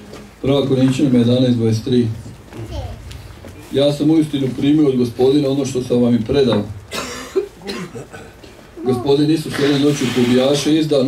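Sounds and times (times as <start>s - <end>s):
person coughing: 6.9s - 8.6s
breath noise: 9.5s - 10.6s.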